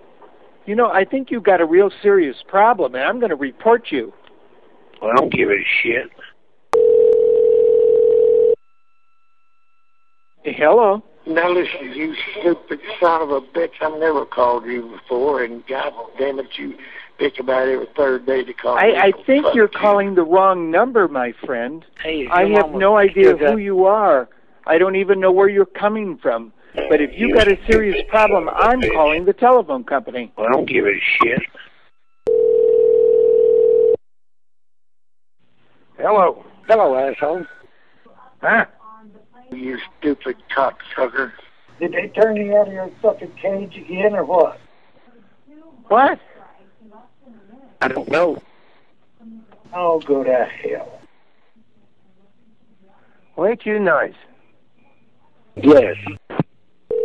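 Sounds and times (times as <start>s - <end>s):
steady telephone tone: 6.8s - 10.5s, 31.2s - 34.0s
faint high steady tone: 6.8s - 11.5s.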